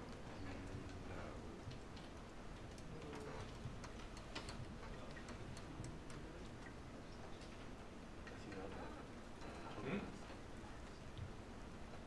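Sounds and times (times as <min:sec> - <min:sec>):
faint clicks and taps: 0:00.0 - 0:12.0.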